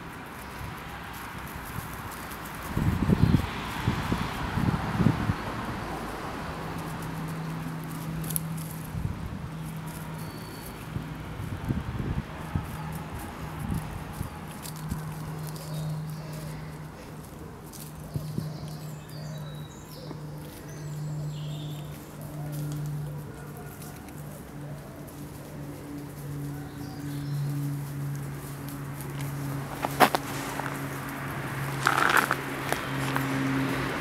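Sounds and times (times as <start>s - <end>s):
squirrel gnawing crunching clicks: 6.8s - 8.9s, 28.6s - 33.3s.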